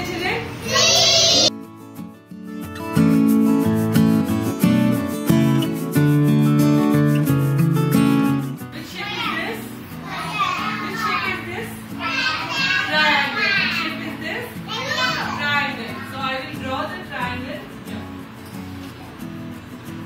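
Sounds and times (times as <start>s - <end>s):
young children chattering: 0.6s - 1.5s, 9.0s - 16.7s.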